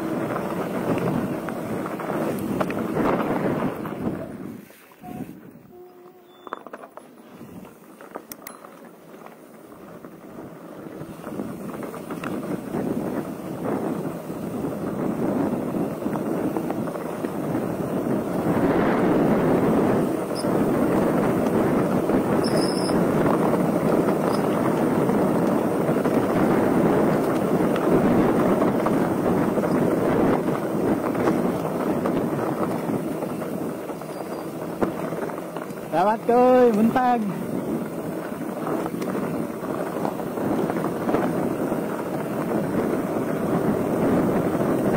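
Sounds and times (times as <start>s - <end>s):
wind on microphone: 0.0s - 7.8s, 9.8s - 44.9s
bike tyres crunching on gravel: 0.0s - 44.9s
high squeak: 5.0s - 6.8s.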